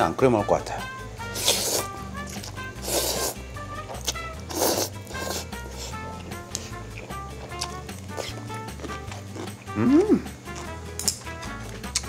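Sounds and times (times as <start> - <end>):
light background music: 0.0 - 12.0
person slurping noodles: 1.4 - 3.4, 4.0 - 6.0.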